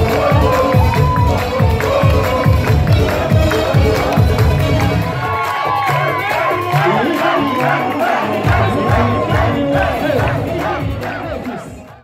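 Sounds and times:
crowd shouting and cheering: 0.0 - 12.0
heavy bass beat: 0.0 - 12.0
loud dance music: 0.0 - 12.0.

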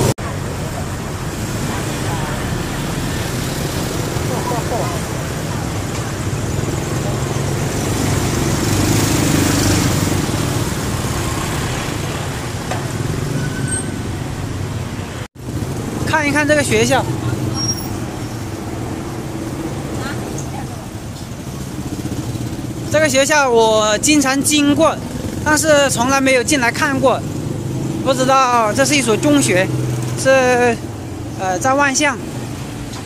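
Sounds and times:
car engines passing: 0.0 - 33.0
motorbike engines passing: 0.0 - 33.0.

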